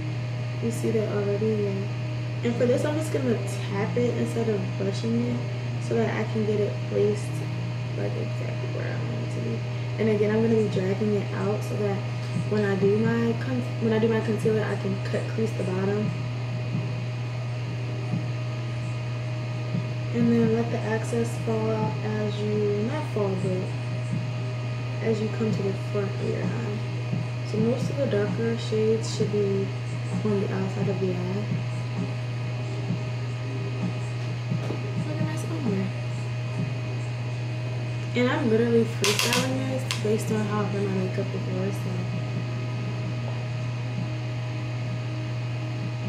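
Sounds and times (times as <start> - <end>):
low electrical hum: 0.0 - 46.0.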